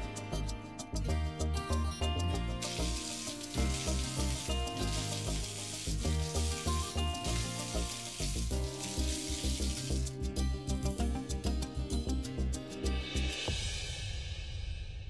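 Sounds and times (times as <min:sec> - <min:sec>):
background music with bass beat: 0:00.0 - 0:13.5
water running from tap: 0:02.6 - 0:10.2.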